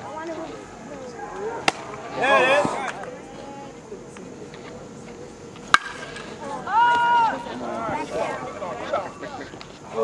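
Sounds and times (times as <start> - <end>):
sharp crack: 5.7 - 6.3.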